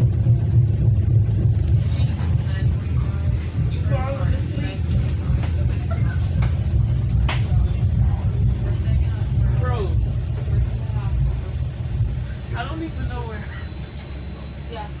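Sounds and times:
indistinct passenger voices: 0.0s - 15.0s
train rumbling: 0.0s - 15.0s
faint high whine: 6.4s - 15.0s.

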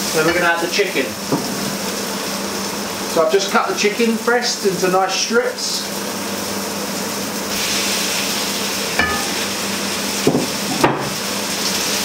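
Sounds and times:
chicken sizzling in a wok: 0.0s - 12.0s.

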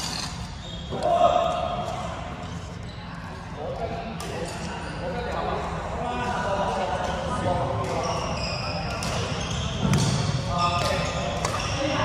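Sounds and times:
people talking: 0.9s - 12.0s.

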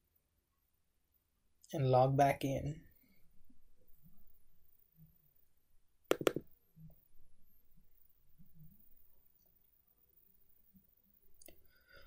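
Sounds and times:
faint room noise: 0.0s - 12.0s
sharp clicks of computer input: 6.1s - 6.4s.

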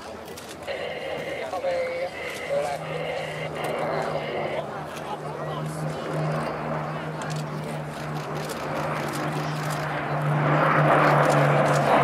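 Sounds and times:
distant aircraft engines droning: 0.0s - 12.0s
indistinct spectator voices: 0.6s - 7.9s
steady low engine hum: 0.6s - 12.0s.

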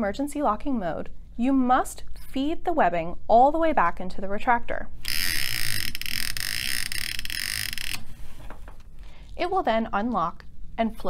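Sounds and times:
retractor ratcheting clicks: 5.0s - 8.1s.

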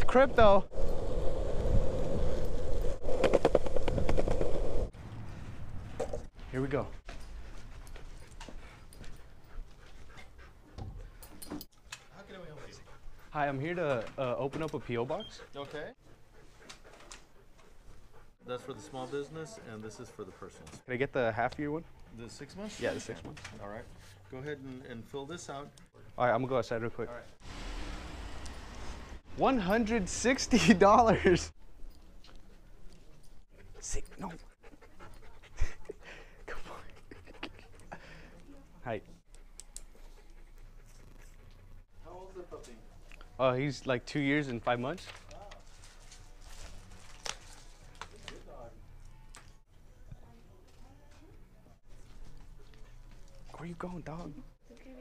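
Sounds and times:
dog panting: 6.9s - 27.4s, 32.3s - 42.6s
man speaking: 29.4s - 31.6s.

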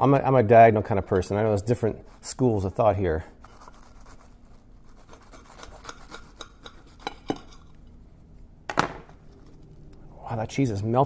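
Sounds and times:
knife cutting crisp sandwich: 4.8s - 7.1s.

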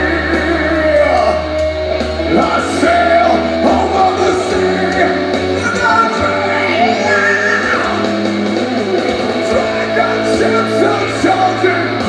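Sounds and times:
electric guitar: 0.0s - 12.0s
live rock band playing: 0.0s - 12.0s.

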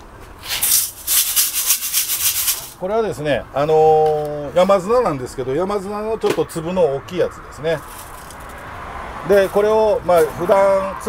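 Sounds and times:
sand rattling in metal sieve: 0.4s - 2.8s.

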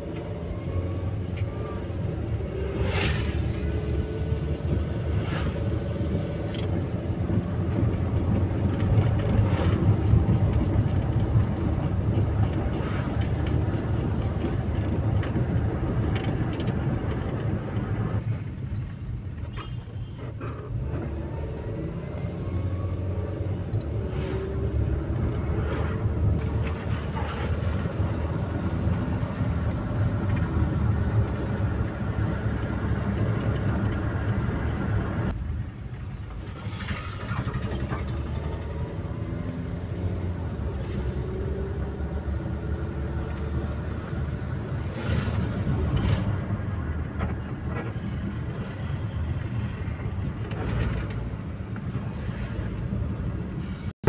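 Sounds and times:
engine and tyre rumble: 0.0s - 54.0s.

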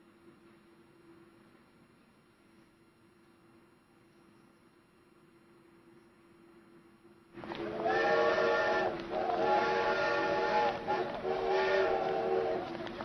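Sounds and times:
train whistle blasts: 7.6s - 12.8s.

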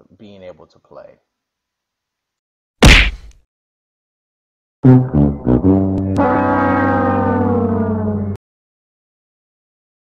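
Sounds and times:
sad trombone note sagging: 4.8s - 8.3s.

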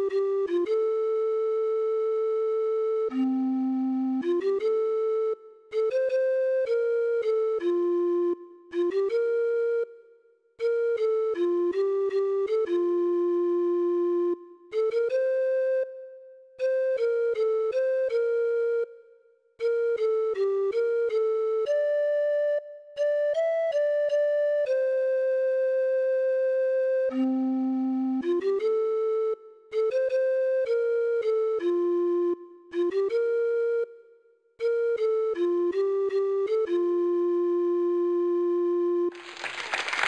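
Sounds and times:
recorder-like melody: 0.0s - 39.2s.

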